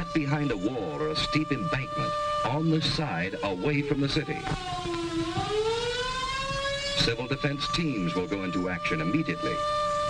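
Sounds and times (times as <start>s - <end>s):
air-raid siren: 0.0s - 10.0s.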